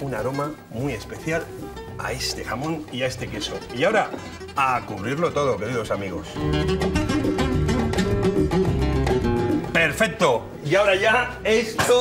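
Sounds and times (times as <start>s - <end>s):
acoustic guitar plucking: 0.1s - 10.0s.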